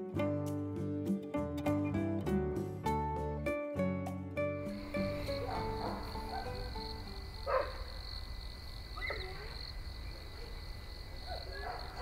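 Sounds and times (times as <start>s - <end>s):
plucked background music: 0.0s - 7.2s
insects chorus: 4.7s - 12.0s.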